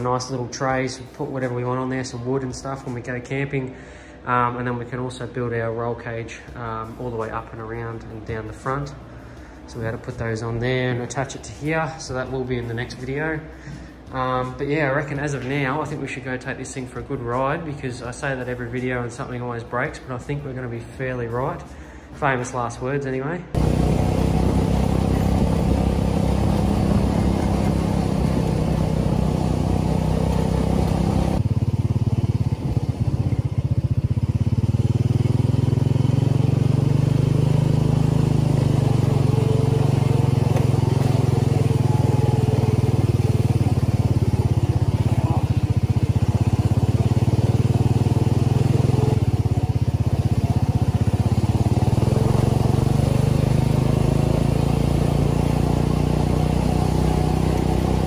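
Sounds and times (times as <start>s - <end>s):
buggy engine droning under load: 0.0s - 22.7s, 23.5s - 58.0s.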